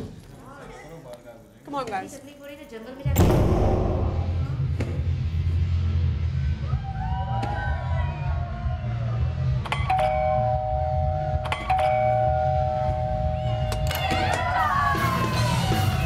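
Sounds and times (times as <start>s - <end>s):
two-tone electric doorbell chime: 9.9s - 13.3s.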